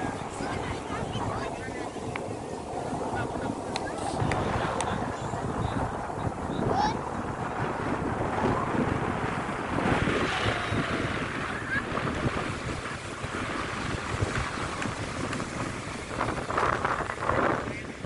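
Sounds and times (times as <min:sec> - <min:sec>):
ocean surf breaking on beach: 0:00.0 - 0:18.0
wind buffeting microphone: 0:00.0 - 0:18.0.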